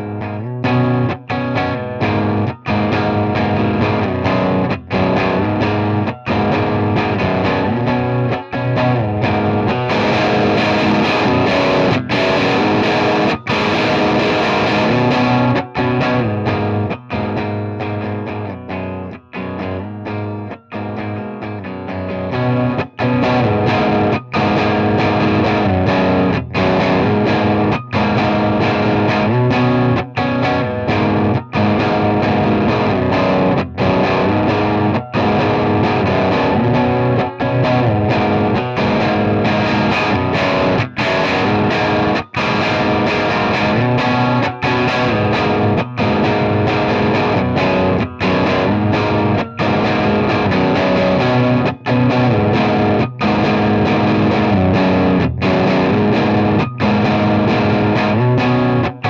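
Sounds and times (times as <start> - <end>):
electric guitar chords: 0.0 - 59.0.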